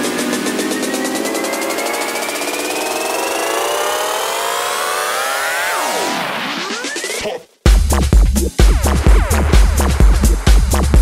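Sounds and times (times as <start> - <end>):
synthesizer riser: 0.0 - 7.2.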